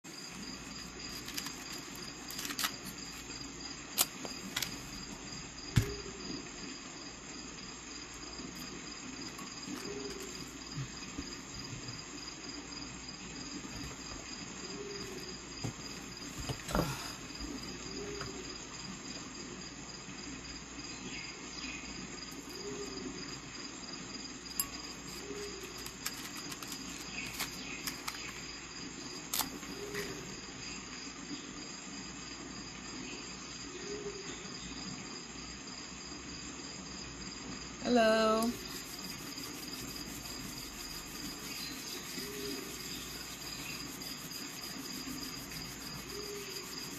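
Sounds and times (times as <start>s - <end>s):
background noise: 0.0s - 46.9s.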